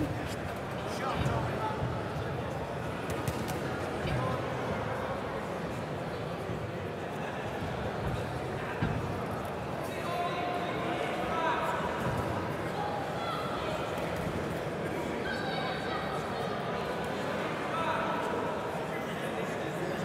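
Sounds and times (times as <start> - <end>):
murmur of crowd voices: 0.0 - 20.0.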